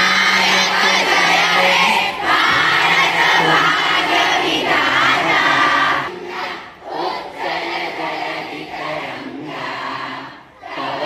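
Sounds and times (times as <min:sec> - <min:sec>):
girls chanting slogans: 0:00.0 - 0:11.0.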